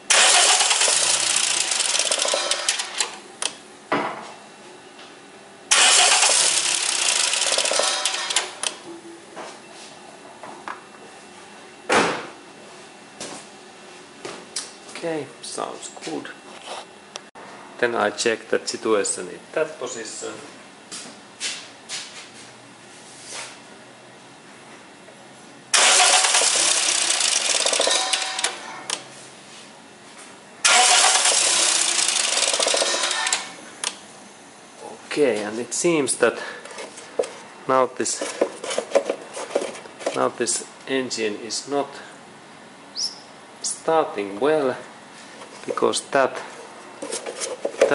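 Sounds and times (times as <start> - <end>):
engine cranking on starter: 0.1 - 3.2, 5.7 - 8.8, 25.8 - 28.6, 30.6 - 33.5.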